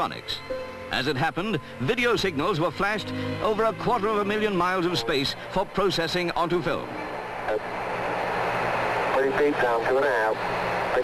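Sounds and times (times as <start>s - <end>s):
radio static hiss: 6.7s - 11.0s.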